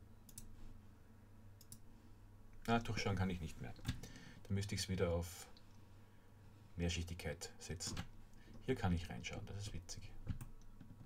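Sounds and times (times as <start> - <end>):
computer mouse clicks: 0.3 - 0.5, 1.6 - 1.8, 10.2 - 11.0.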